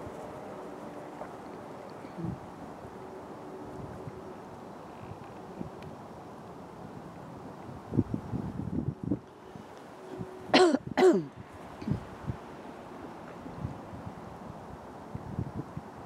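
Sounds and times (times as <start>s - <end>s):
low wind rumble: 0.0s - 16.0s.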